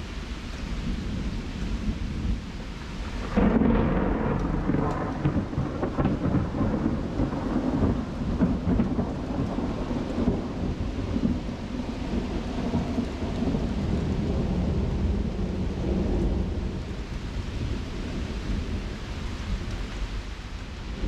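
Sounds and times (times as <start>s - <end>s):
low rumble of thunder: 0.0s - 21.0s
raindrops striking close by: 0.0s - 21.0s
steady rain: 0.0s - 21.0s.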